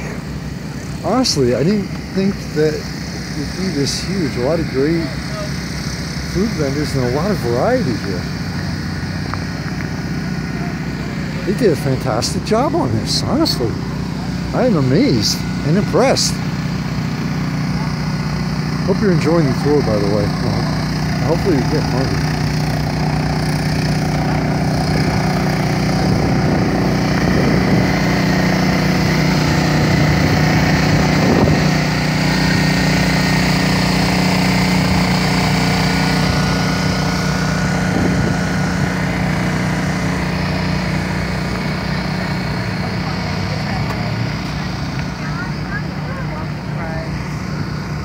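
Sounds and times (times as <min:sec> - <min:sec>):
engine drone: 0:00.0 - 0:48.0
people talking: 0:01.0 - 0:05.6, 0:06.3 - 0:08.3, 0:10.4 - 0:16.4, 0:18.8 - 0:23.0, 0:41.7 - 0:47.2.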